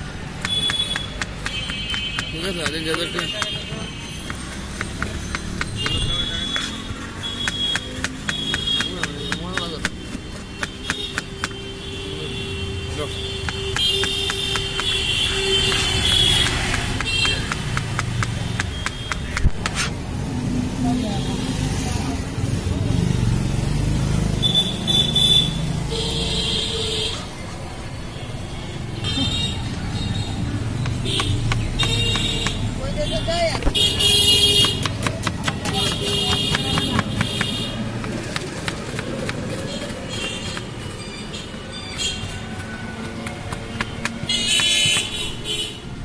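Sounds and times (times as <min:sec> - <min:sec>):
low street background noise: 0:00.0 - 0:46.0
low traffic rumble: 0:00.0 - 0:46.0
knife chopping on plastic board: 0:00.4 - 0:06.8, 0:07.4 - 0:11.6, 0:13.4 - 0:15.0, 0:15.6 - 0:19.9, 0:30.8 - 0:32.6, 0:34.4 - 0:39.6, 0:43.0 - 0:45.2.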